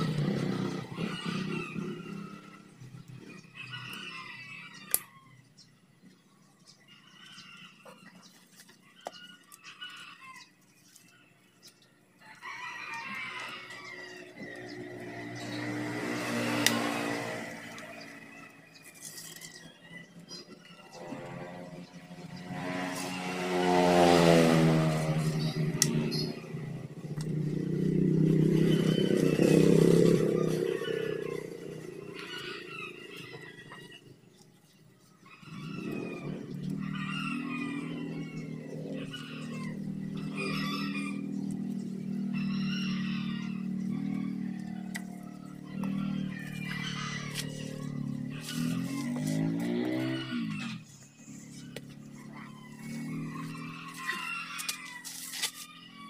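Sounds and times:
motor vehicles passing: 0.0s - 56.0s
steady engine hum: 0.0s - 56.0s.

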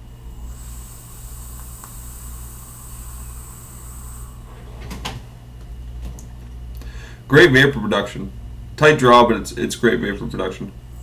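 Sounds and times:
e-cigarette coil sizzling hiss: 0.0s - 4.6s
person breathing out: 0.4s - 4.7s, 6.8s - 7.3s.

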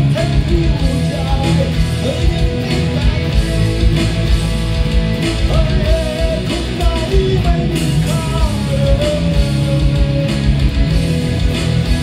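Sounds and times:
bending guitar lead melody: 0.0s - 12.0s
rock music with distorted guitars: 0.0s - 12.0s
steady low beat: 0.0s - 12.0s.

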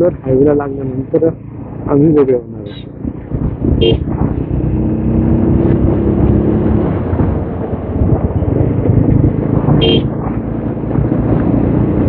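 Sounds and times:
motorcycle engine running: 0.0s - 12.0s
wind rush on microphone: 2.9s - 12.0s
short horn beep: 3.8s - 4.0s, 9.8s - 10.1s.

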